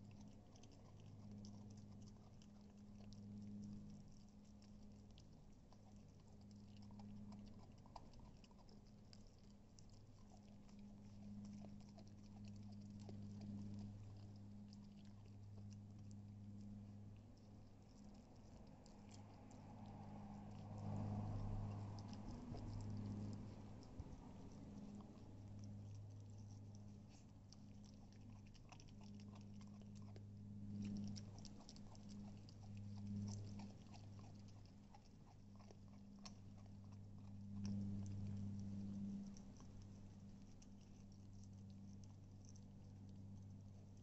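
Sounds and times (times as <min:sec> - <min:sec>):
puppy gnawing and licking: 0:00.0 - 0:44.0
steady low hum: 0:00.0 - 0:44.0.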